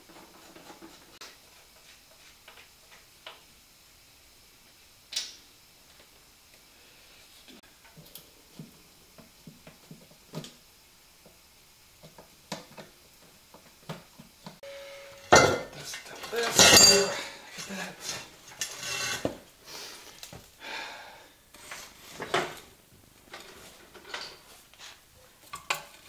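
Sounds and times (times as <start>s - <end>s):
metal tools clinking: 15.2s - 19.2s.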